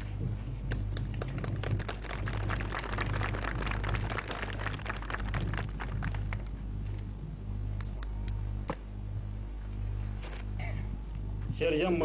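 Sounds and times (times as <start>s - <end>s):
low electrical hum: 0.0s - 12.0s
hands clapping: 0.7s - 6.5s.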